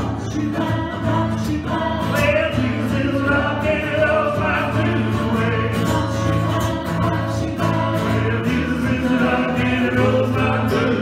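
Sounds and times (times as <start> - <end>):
group singing: 0.0 - 11.0
strummed acoustic guitar: 0.0 - 11.0.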